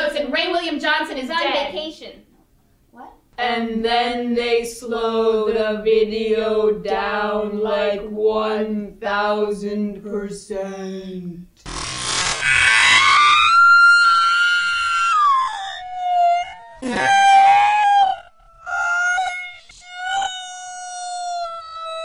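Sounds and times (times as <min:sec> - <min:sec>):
slowed woman screaming: 0:12.4 - 0:19.4.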